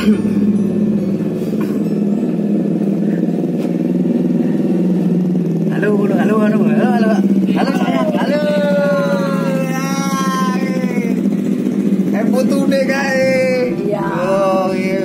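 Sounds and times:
vehicle engine humming: 0.0s - 15.0s.

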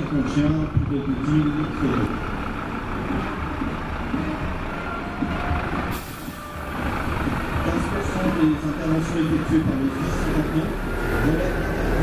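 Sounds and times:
diesel truck engine running: 0.0s - 12.0s
air brakes hissing: 5.8s - 6.8s.

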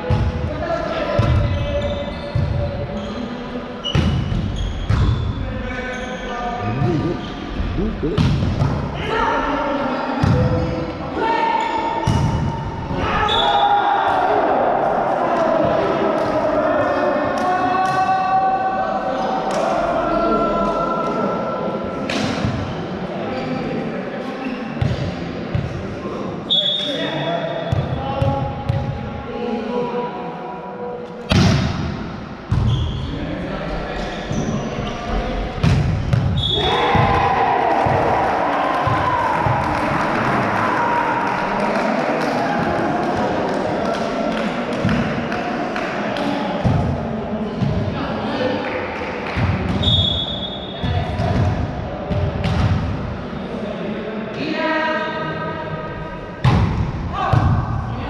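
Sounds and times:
referee whistle blasts: 26.5s - 27.0s, 49.8s - 50.7s
players and spectators shouting: 36.5s - 44.7s
volleyball bouncing and being hit: 56.4s - 57.6s.

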